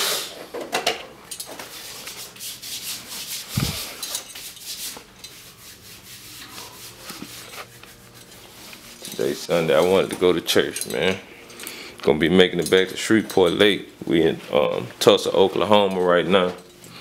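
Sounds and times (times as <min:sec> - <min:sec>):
phone handling rubbing and scraping: 0:03.6 - 0:04.1, 0:06.6 - 0:10.0.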